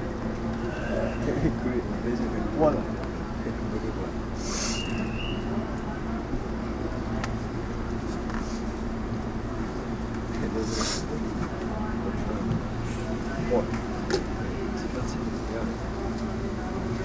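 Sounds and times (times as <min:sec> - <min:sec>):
electric train equipment humming: 0:00.0 - 0:17.0
brief hiss: 0:04.4 - 0:05.0.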